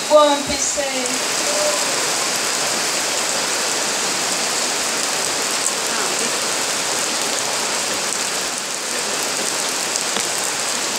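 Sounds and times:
rain on tent canopy: 0:00.0 - 0:10.9.

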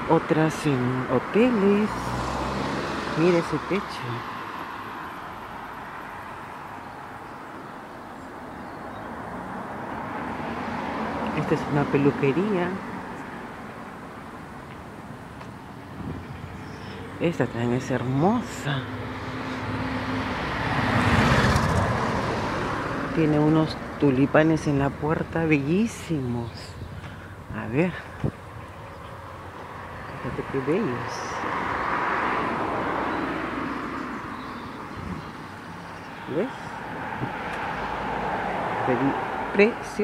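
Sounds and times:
car passing by: 0:01.2 - 0:07.3, 0:08.1 - 0:14.4, 0:15.0 - 0:25.0, 0:28.2 - 0:40.0.

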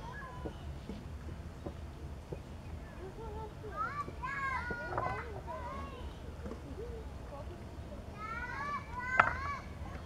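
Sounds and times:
children shouting: 0:00.0 - 0:00.7, 0:03.8 - 0:06.1, 0:08.2 - 0:10.0.

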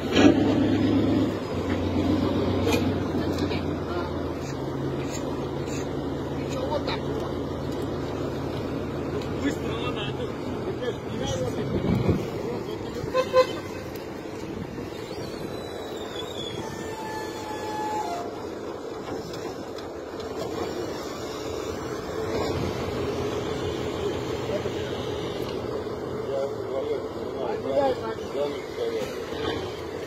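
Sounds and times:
diesel engine running: 0:00.0 - 0:30.0.

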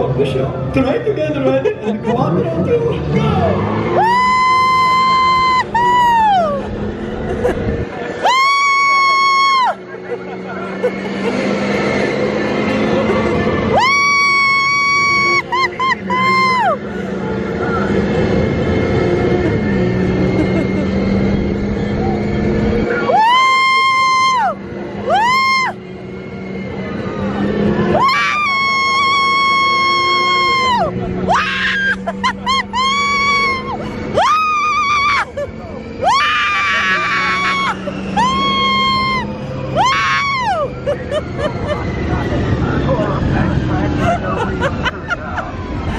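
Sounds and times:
ride car rumbling on track: 0:00.0 - 0:45.9
riders screaming: 0:03.0 - 0:07.2, 0:08.0 - 0:45.9
ride music: 0:37.1 - 0:45.9.

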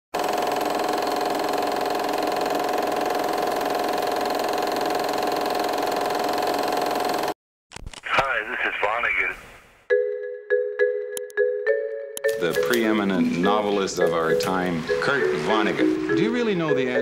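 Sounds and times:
film projector clatter and whir: 0:00.2 - 0:07.4.

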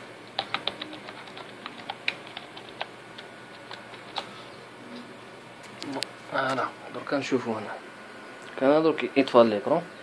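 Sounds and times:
keyboard keys clicking: 0:00.4 - 0:04.3.

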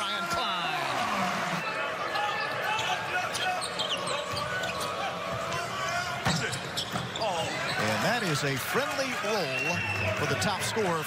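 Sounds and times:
arena crowd noise: 0:00.0 - 0:11.0
sneakers squeaking: 0:02.2 - 0:08.4.

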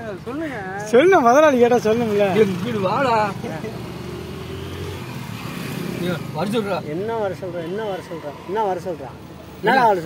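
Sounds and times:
men talking: 0:00.0 - 0:04.3, 0:05.6 - 0:10.0
vehicle engine humming: 0:00.0 - 0:07.9.

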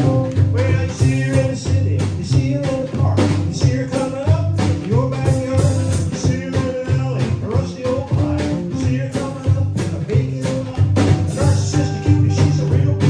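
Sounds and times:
drums keeping a steady beat: 0:00.0 - 0:13.0
man singing: 0:00.0 - 0:13.0
strummed acoustic guitar: 0:00.0 - 0:13.0.

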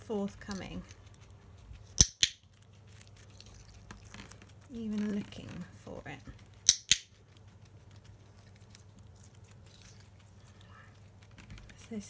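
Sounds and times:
training clicker clicks: 0:06.7 - 0:07.1.

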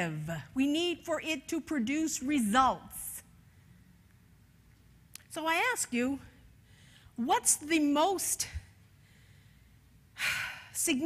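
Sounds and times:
woman speaking: 0:00.0 - 0:03.3, 0:05.3 - 0:06.4, 0:07.2 - 0:08.6, 0:10.8 - 0:11.0
woman breathing: 0:06.5 - 0:07.2, 0:08.9 - 0:10.8.

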